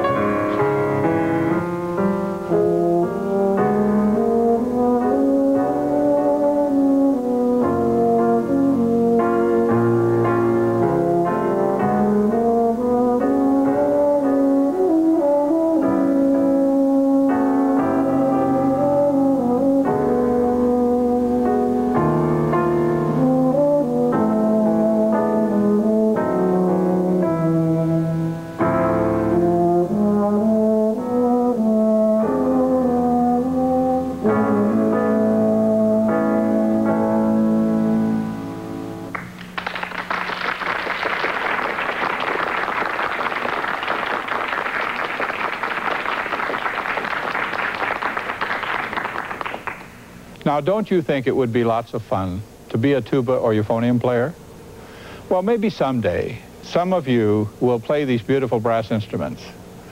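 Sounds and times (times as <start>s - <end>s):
euphonium solo: 0.0s - 50.0s
piano accompaniment: 0.0s - 59.9s
audience applause: 39.1s - 50.0s.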